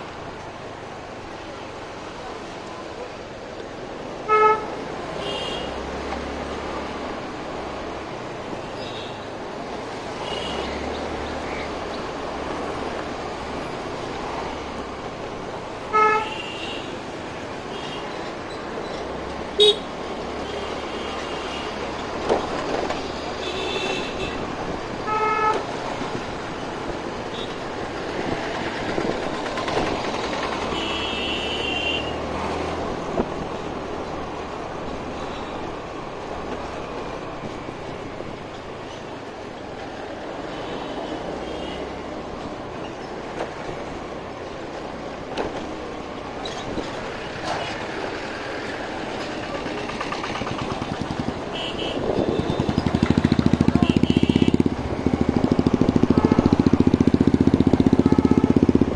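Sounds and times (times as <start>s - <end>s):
wind and road noise: 0.0s - 58.9s.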